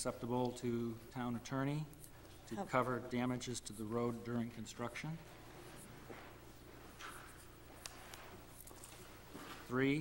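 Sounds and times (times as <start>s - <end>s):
low electrical hum: 0.0s - 10.0s
pen and papers rustling: 7.0s - 9.7s.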